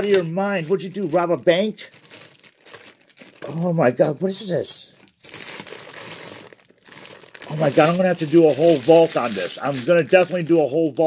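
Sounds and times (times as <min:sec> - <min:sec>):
plastic bag crinkling: 0:00.0 - 0:04.4, 0:05.0 - 0:11.0.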